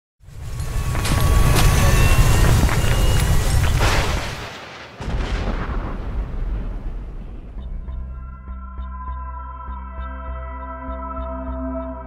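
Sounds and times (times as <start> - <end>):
booming impact with low rumble: 0.8 - 8.2.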